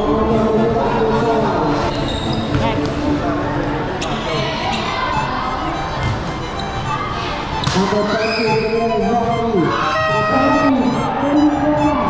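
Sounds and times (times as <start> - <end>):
players and spectators shouting: 7.8 - 12.0.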